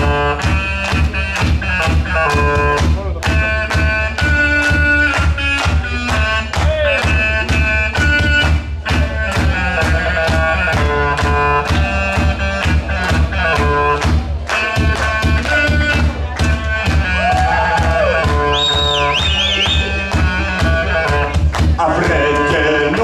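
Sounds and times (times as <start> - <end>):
reedy pipe wind instrument: 0.0 - 23.0
steady beat: 0.0 - 23.0.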